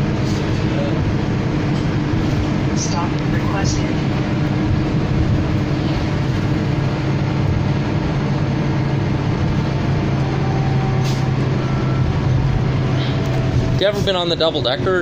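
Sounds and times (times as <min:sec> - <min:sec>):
bus engine droning: 0:00.0 - 0:15.0
road and tyre noise: 0:00.0 - 0:15.0.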